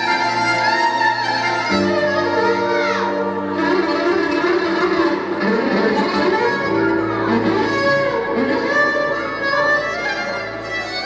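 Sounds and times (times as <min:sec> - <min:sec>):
electric violin playing: 0:00.0 - 0:11.0.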